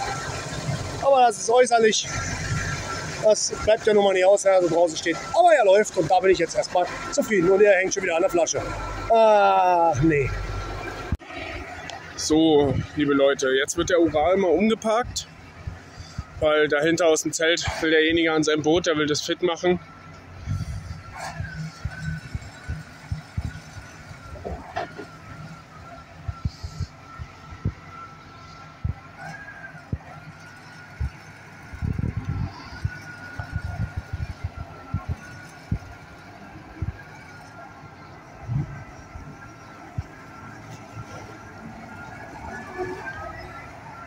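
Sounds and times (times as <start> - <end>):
diesel truck engine running: 0.0 - 44.0
steady high tone: 0.0 - 44.0.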